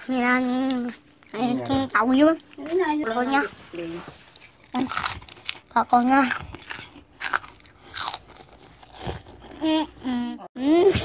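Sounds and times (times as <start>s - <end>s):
child chewing crisp snack: 0.1s - 10.2s.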